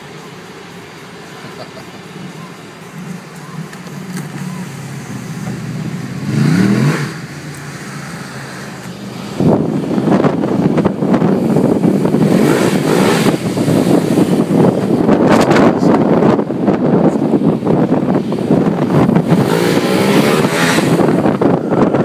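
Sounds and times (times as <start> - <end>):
car engine hum: 0.0 - 22.0
motorcycle engine revving: 3.0 - 15.4, 18.3 - 22.0
wind noise on microphone: 3.0 - 22.0.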